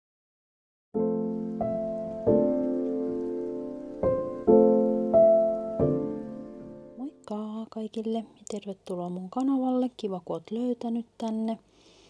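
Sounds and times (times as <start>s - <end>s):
soft keyboard chord: 1.0s - 7.0s.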